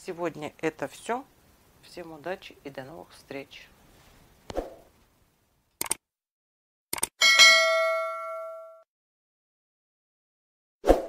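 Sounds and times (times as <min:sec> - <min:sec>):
notification bell ding: 0:07.2 - 0:08.8.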